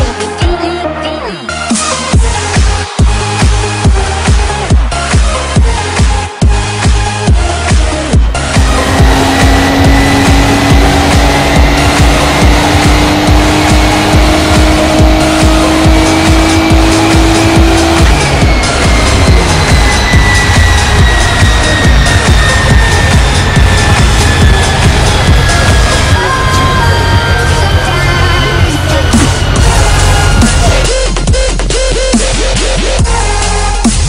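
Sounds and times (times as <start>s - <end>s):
electronic dance music: 0.0s - 34.0s
engine revving on dynamometer: 6.5s - 31.4s.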